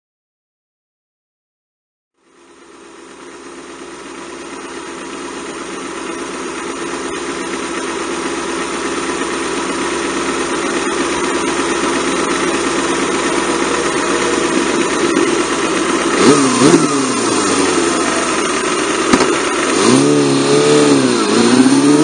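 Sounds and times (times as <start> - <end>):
motorcycle engine idling and revving: 2.2 - 22.0.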